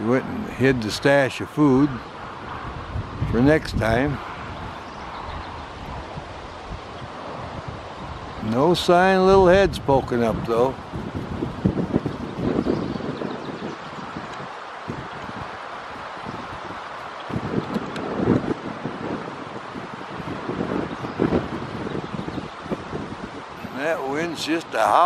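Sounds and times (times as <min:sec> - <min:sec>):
strong wind howling: 0:00.0 - 0:25.0
wind buffeting microphone: 0:00.0 - 0:25.0.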